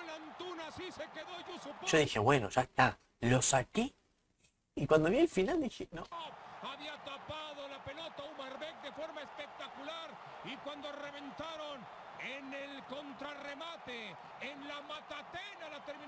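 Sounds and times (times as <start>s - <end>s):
sports commentator talking: 0.0s - 4.0s, 4.8s - 16.0s.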